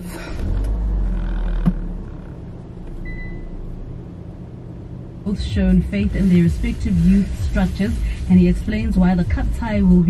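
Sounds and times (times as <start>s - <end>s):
car cabin rumble: 0.0s - 10.0s
short faint high beep: 3.0s - 3.5s.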